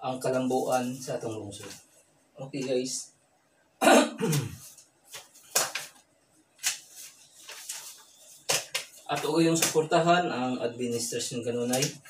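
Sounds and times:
man coughing: 3.8s - 4.7s.

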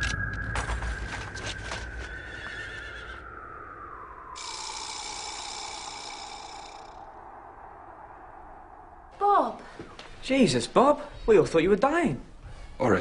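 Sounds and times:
whistled note sliding down: 0.0s - 9.1s.

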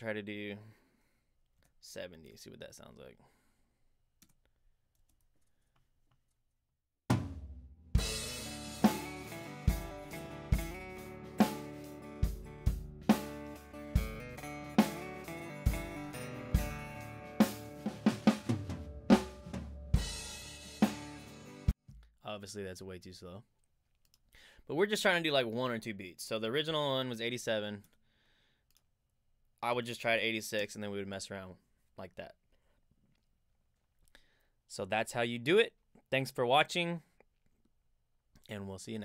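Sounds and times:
kick and snare drum hits: 7.1s - 8.4s
acoustic guitar: 8.4s - 18.9s.

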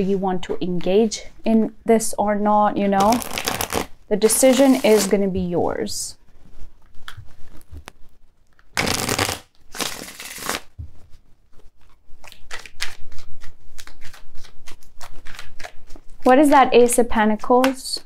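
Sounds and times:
cards being shuffled: 3.0s - 5.2s, 8.8s - 10.8s.

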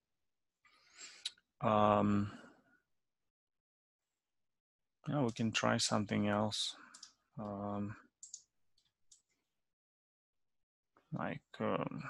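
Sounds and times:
faint computer mouse clicks: 6.9s - 7.6s.

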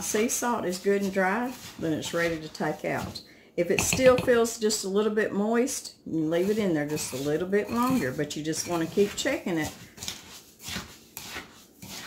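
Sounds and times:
fingers rubbing coarse salt: 0.8s - 2.5s, 10.0s - 12.0s.

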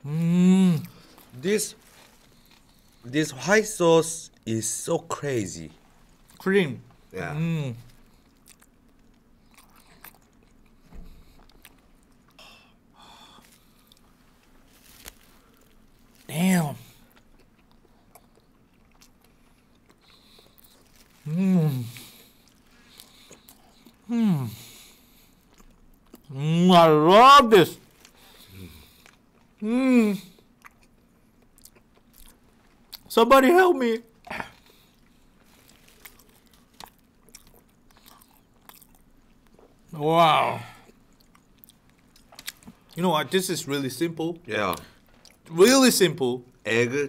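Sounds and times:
faint chewing: 0.2s - 3.1s, 7.8s - 26.3s, 27.8s - 29.6s, 30.3s - 33.1s, 34.1s - 39.9s, 40.8s - 43.0s, 44.7s - 45.5s.

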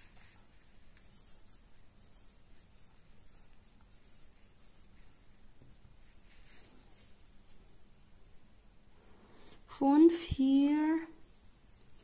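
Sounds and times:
pen scratching on paper: 0.0s - 5.4s.

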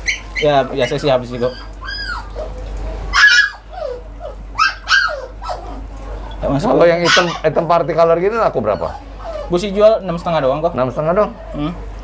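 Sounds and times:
dog yipping: 0.0s - 9.7s
dog whining: 0.0s - 10.0s.

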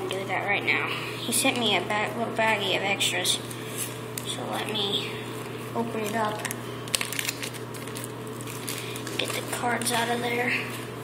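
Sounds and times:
plastic bag crinkling: 5.8s - 10.9s.

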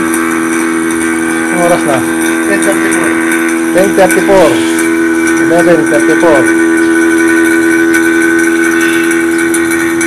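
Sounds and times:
vacuum pump humming: 0.0s - 10.0s.

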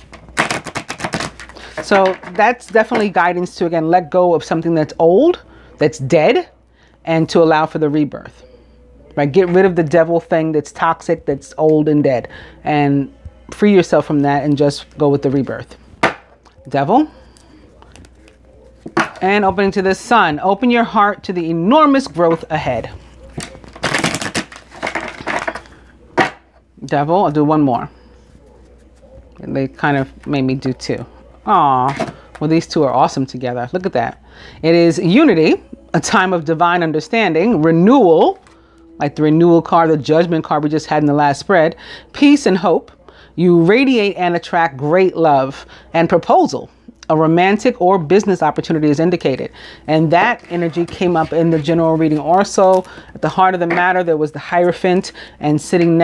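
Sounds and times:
cards being shuffled: 0.0s - 2.2s.

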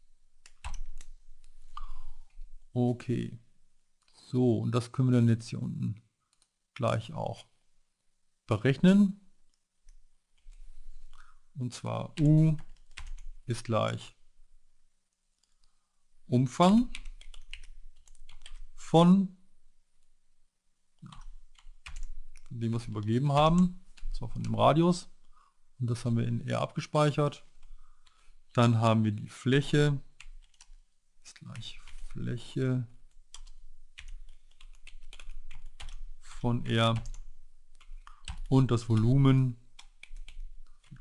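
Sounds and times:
computer keyboard typing: 0.4s - 1.5s, 12.1s - 13.4s, 16.9s - 18.7s, 21.0s - 24.6s, 30.2s - 30.8s, 33.2s - 36.1s, 36.9s - 39.2s, 39.8s - 41.0s.

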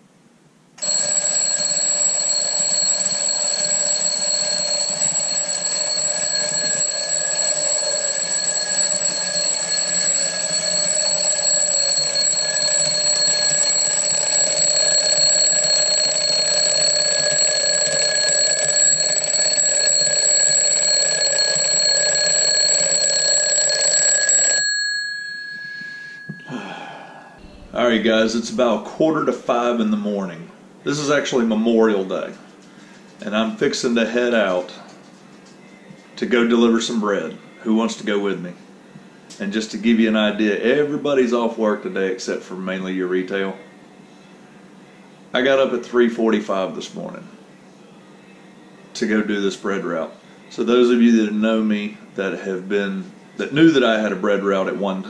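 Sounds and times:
alarm clock bells ringing: 0.8s - 26.6s.

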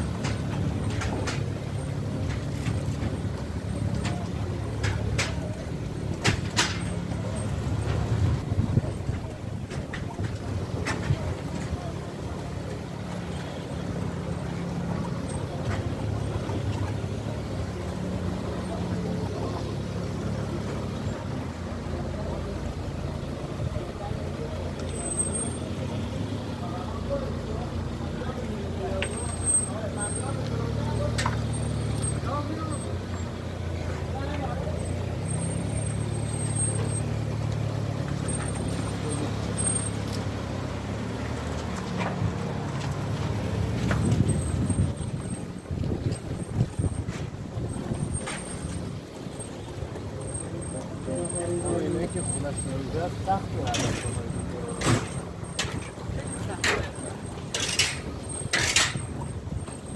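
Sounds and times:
car engine idling: 0.0s - 59.9s
faint voices: 0.0s - 59.9s.

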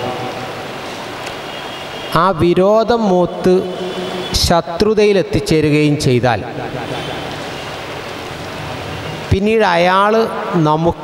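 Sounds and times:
steady hissing noise: 0.0s - 11.0s.

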